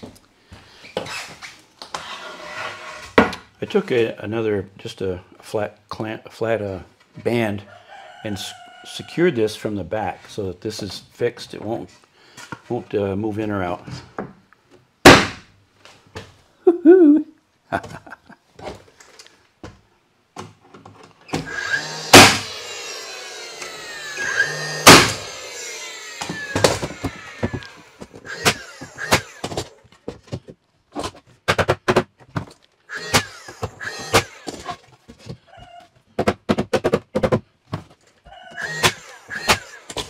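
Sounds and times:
board scraping on board: 0:01.0 - 0:03.4
loud wooden knocks: 0:21.4 - 0:22.5, 0:24.6 - 0:25.3, 0:36.1 - 0:37.9.

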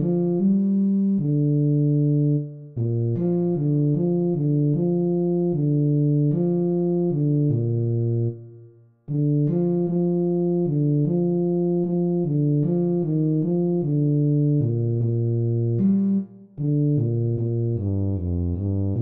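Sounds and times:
synthesized tuba low notes: 0:00.0 - 0:19.0.

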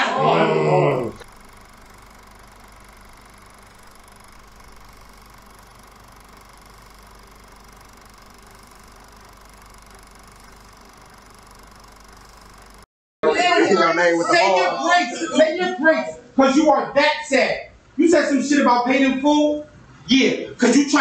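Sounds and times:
faint mechanical hum: 0:00.0 - 0:21.0.

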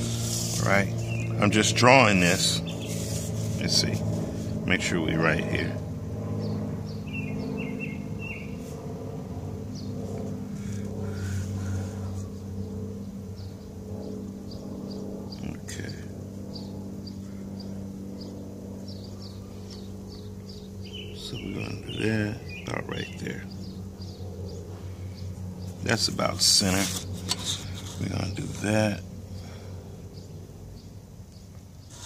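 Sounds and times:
low mechanical hum: 0:00.0 - 0:32.0
small birds chirping: 0:00.1 - 0:08.8, 0:09.4 - 0:32.0.

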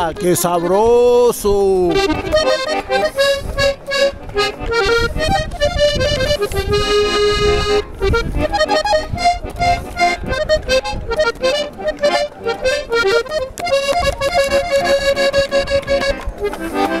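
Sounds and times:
accordion playing: 0:00.0 - 0:17.0.

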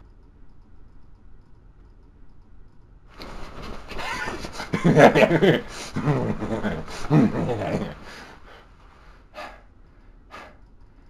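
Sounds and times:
low hiss: 0:00.0 - 0:11.0
man laughing: 0:03.8 - 0:08.5.

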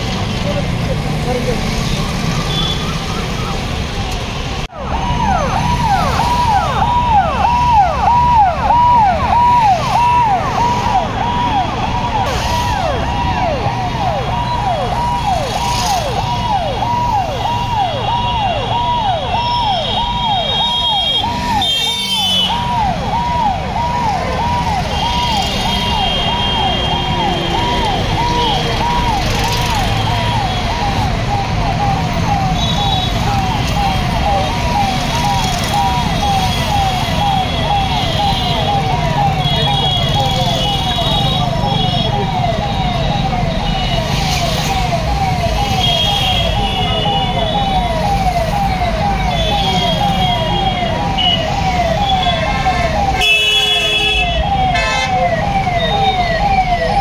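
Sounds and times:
police siren: 0:00.0 - 0:57.0.

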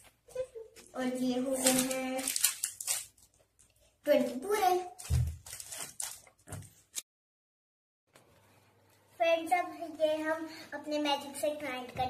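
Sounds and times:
plastic biscuit wrapper crinkling: 0:01.5 - 0:03.7, 0:05.0 - 0:06.4.

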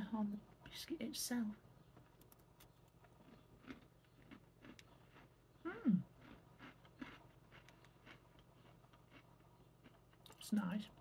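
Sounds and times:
crisp biscuit being chewed: 0:02.2 - 0:10.5.

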